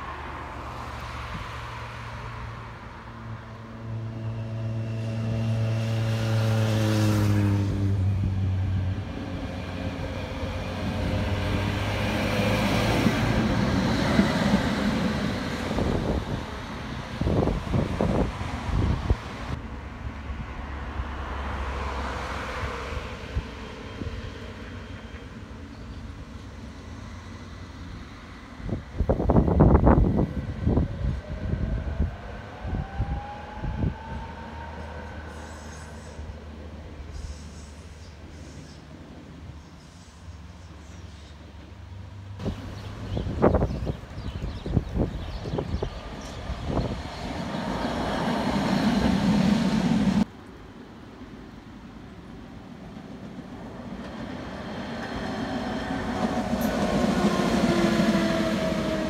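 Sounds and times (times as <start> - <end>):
road traffic passing: 0.0 - 59.0
tram motor whine rising: 3.3 - 18.6, 30.0 - 36.6, 46.0 - 50.3, 53.5 - 59.0.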